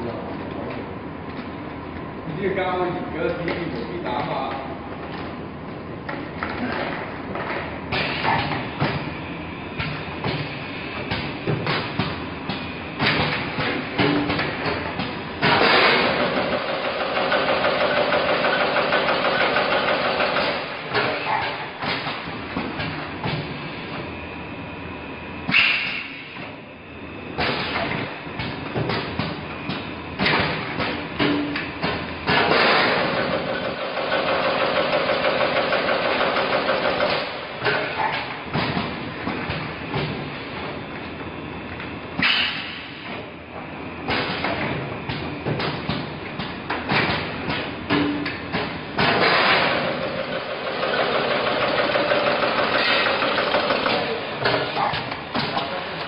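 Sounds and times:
machine whirring: 7.7s - 56.0s.

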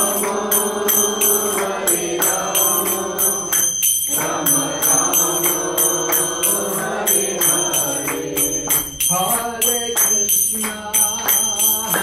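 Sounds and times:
devotional chanting: 0.0s - 12.0s
hand cymbals struck in rhythm: 0.0s - 12.0s.

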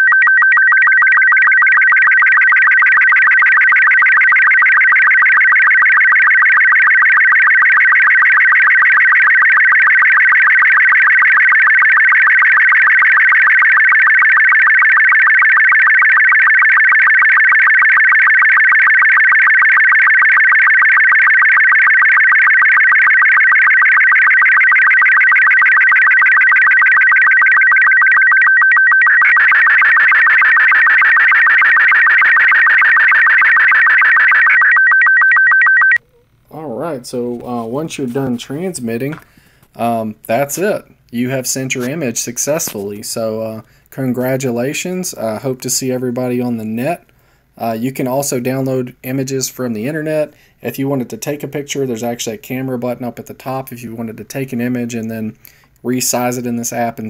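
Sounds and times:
warbling electronic tone: 0.0s - 36.0s.

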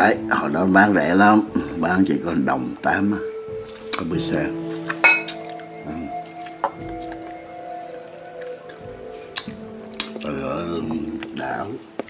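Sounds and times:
background music: 0.0s - 12.0s
metal spoon clinking on dishware: 5.0s - 5.5s.

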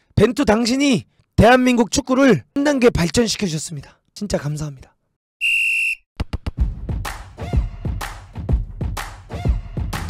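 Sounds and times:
high-pitched whistle blast: 5.4s - 6.1s.

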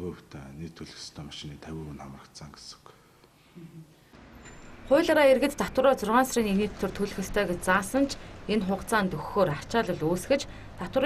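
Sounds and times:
man speaking softly: 0.0s - 3.0s.

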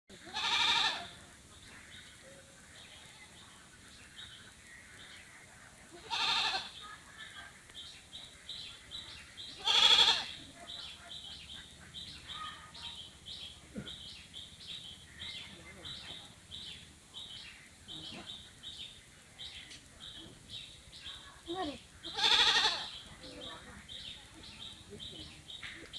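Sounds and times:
goat bleating: 0.2s - 1.2s, 6.0s - 6.8s, 9.6s - 10.4s, 22.1s - 23.0s.

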